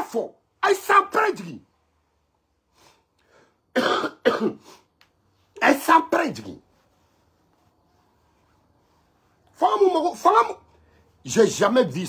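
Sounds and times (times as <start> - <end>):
man coughing: 3.7 - 4.9.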